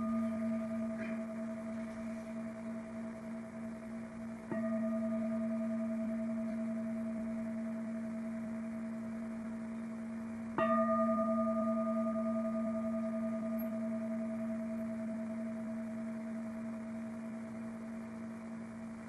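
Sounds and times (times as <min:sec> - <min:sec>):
singing bowl ringing: 0:00.0 - 0:19.0.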